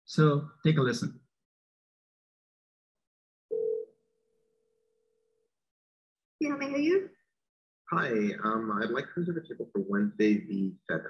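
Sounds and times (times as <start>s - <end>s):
telephone ringback tone: 3.5s - 3.9s.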